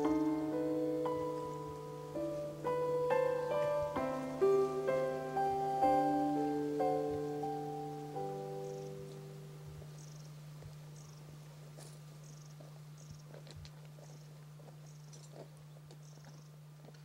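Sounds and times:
steady low hum: 0.0 - 17.0
footsteps on stony path: 9.1 - 17.0.

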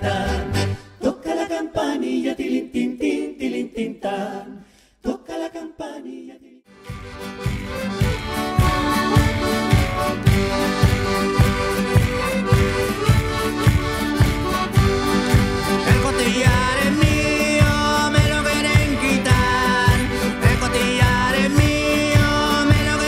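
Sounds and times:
folk band playing dance tune: 6.8 - 23.0.

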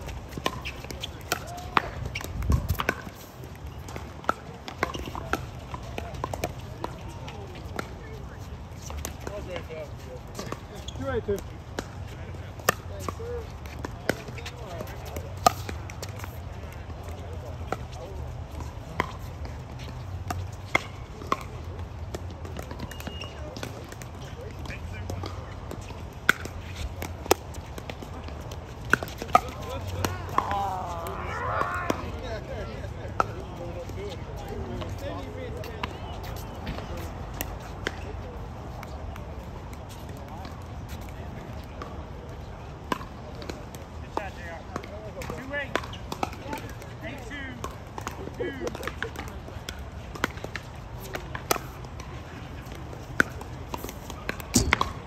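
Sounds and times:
players talking: 0.1 - 55.0
paddles hitting plastic ball: 42.9 - 55.0.

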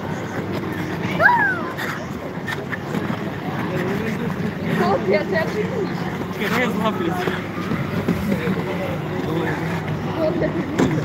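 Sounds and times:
skate blades scraping ice: 0.1 - 9.8.

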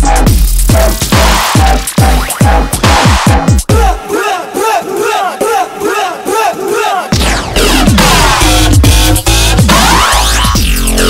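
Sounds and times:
heavy sub-bass: 0.0 - 4.0, 7.2 - 11.0.

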